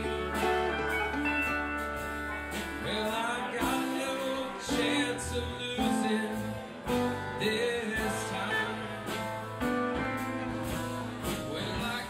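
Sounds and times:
bass line: 0.0 - 12.0
drums: 0.0 - 12.0
electric guitars: 0.0 - 12.0.

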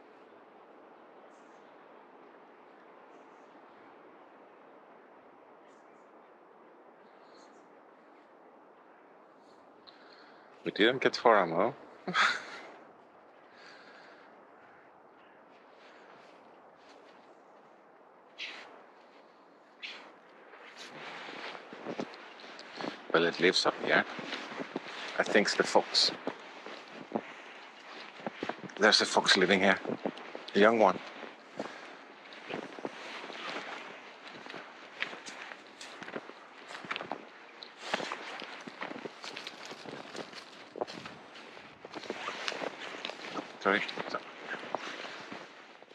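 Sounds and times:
footsteps crunching through snow: 15.2 - 45.9.

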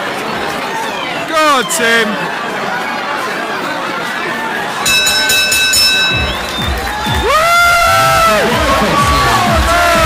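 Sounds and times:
crowd noise: 0.0 - 10.0
boxing bell ringing: 4.8 - 6.6
loud music with pounding bass: 6.2 - 10.0.

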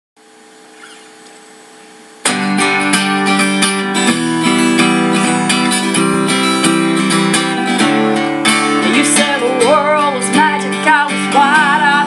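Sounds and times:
faint steady hum: 0.2 - 2.3.

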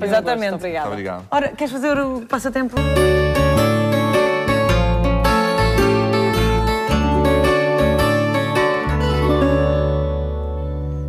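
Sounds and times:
bass line: 2.8 - 11.0
plucked guitar jingle: 2.8 - 11.0.

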